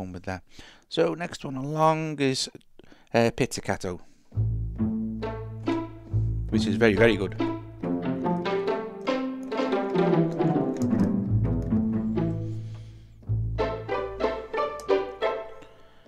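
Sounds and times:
low bass plucks: 4.4s - 8.8s, 10.4s - 14.4s
plucked string notes: 4.4s - 16.0s.

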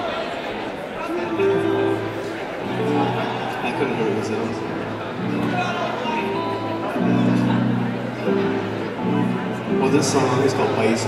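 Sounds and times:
murmur of audience chatter: 0.0s - 11.0s
amplified electric guitar: 1.1s - 11.0s.

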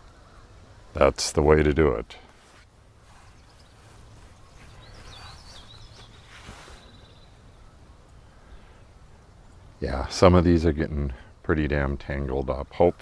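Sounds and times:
small bird chirping: 3.1s - 9.7s.

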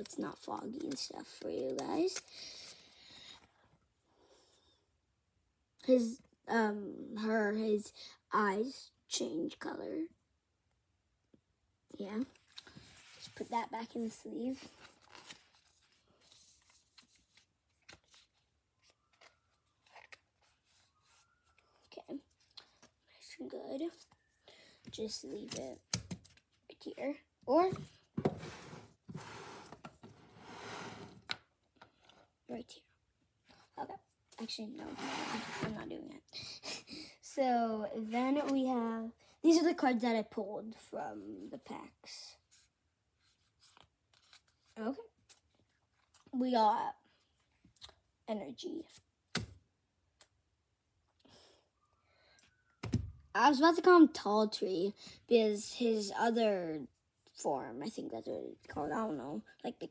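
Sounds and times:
trading cards shuffling: 0.0s - 2.8s, 14.6s - 22.9s.

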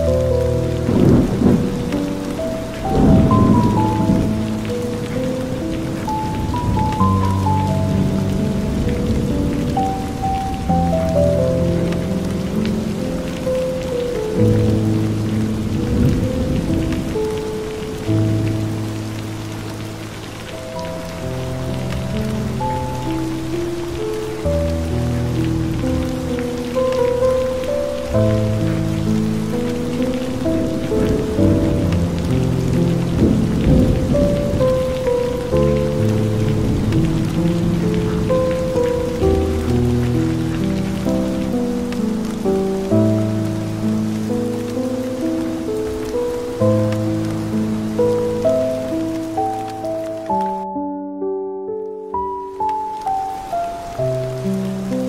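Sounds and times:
slow ambient music: 0.0s - 55.0s
steady rain falling: 0.0s - 55.0s.

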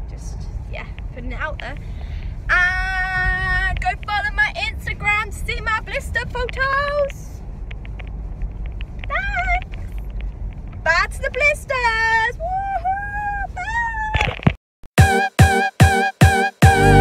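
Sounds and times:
road and engine rumble in car: 0.0s - 14.6s.

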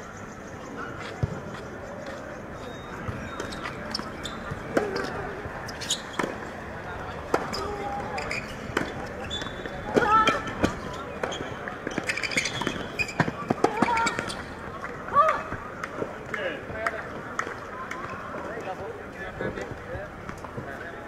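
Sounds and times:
tennis ball bouncing: 7.2s - 7.7s.

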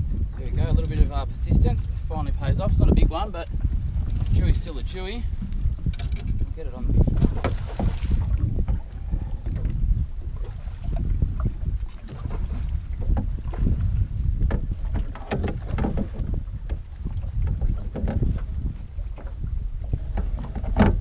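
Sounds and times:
wind rumbling on microphone: 0.0s - 21.0s
water splashes: 2.5s - 21.0s.

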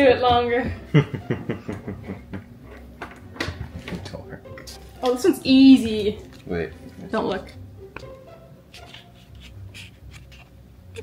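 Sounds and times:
paper slip rustling: 8.7s - 11.0s.

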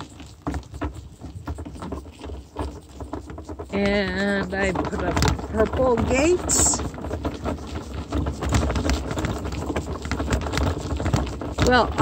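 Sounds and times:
wheels crunching on gravel: 0.0s - 12.0s
wind on microphone: 0.0s - 12.0s.

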